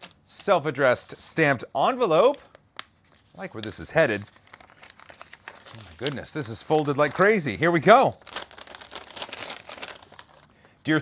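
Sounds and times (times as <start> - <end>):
paper crinkling: 2.2 - 10.6.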